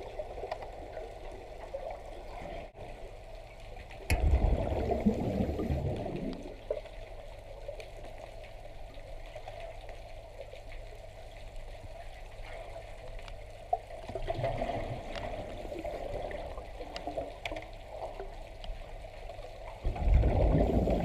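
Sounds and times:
low bubbling rush: 0.0s - 7.7s, 13.9s - 17.4s, 19.7s - 21.0s
muffled underwater water noise: 0.0s - 21.0s.

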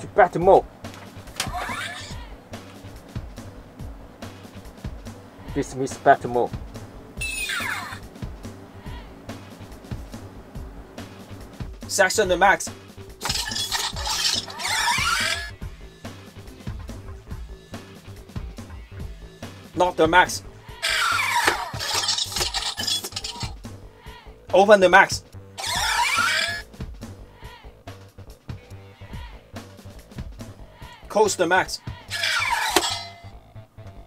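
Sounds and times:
background music: 0.0s - 34.0s
falling electronic tone: 7.2s - 8.1s
helmet mechanism whirring and clicking: 13.2s - 15.5s, 20.8s - 23.6s.

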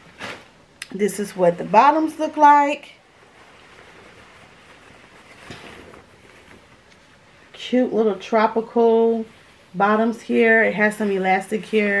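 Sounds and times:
fabric rustling: 0.0s - 12.0s.

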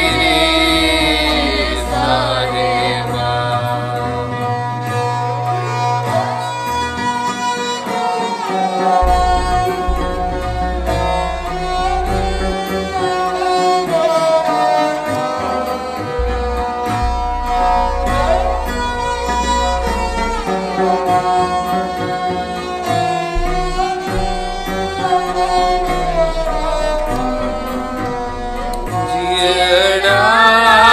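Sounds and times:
bowed string instruments: 0.0s - 30.9s
low drone: 9.0s - 14.0s, 16.2s - 30.9s.

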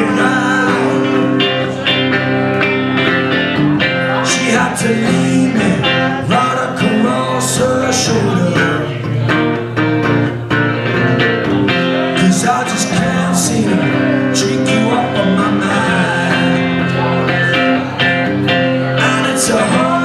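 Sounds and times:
man singing: 0.0s - 9.6s, 10.8s - 20.0s
electric guitar strummed: 0.0s - 20.0s.

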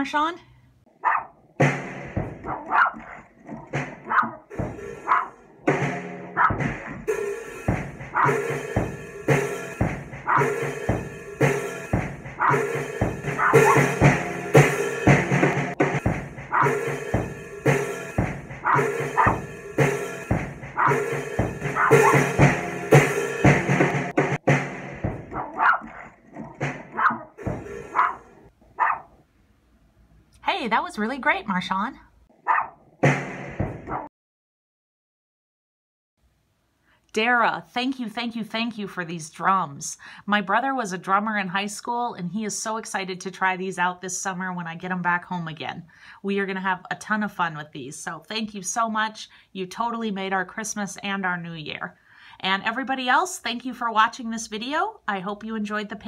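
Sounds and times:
dog barking: 0.9s - 1.4s, 2.4s - 3.3s, 4.0s - 5.4s, 6.3s - 6.7s, 8.1s - 8.5s, 10.2s - 10.6s, 12.4s - 14.0s, 16.5s - 16.9s, 18.6s - 19.5s, 20.8s - 21.1s, 21.7s - 22.4s, 25.3s - 29.2s, 32.4s - 32.8s, 33.9s - 34.1s
drum kit playing: 1.6s - 3.1s, 3.7s - 26.0s, 26.6s - 28.4s, 33.0s - 34.0s.

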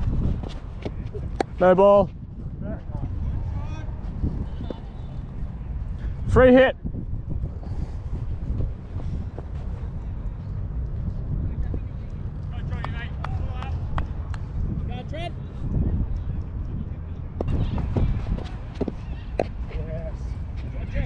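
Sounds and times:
wind buffeting microphone: 0.0s - 21.0s
distant voices calling: 17.1s - 20.6s.

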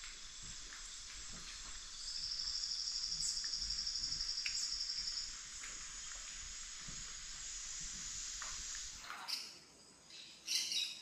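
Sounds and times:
chorus of insects: 0.0s - 11.0s.

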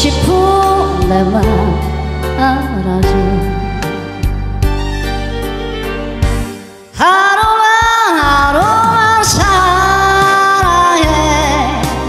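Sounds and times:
woman singing into microphone: 0.0s - 4.2s, 6.9s - 12.0s
recorded backing track: 0.0s - 12.0s.

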